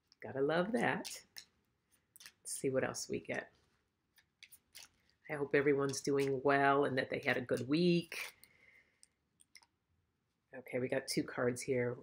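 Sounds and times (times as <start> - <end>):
paper cards clicking: 2.2 - 2.4, 4.2 - 5.0
short breath: 8.4 - 9.1.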